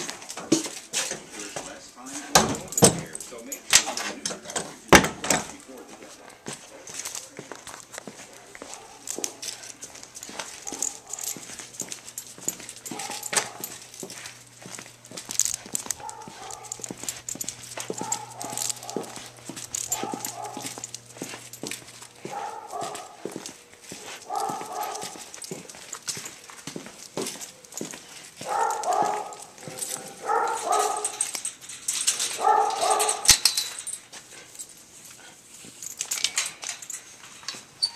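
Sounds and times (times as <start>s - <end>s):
dog barking and whining: 8.3s - 14.1s, 15.3s - 25.8s, 27.4s - 31.5s, 32.1s - 33.4s.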